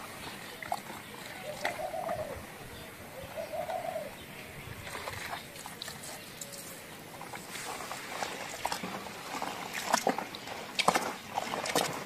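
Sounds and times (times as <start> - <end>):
bird cooing: 0.5 - 7.0
hands splashing in a bucket: 4.8 - 12.0.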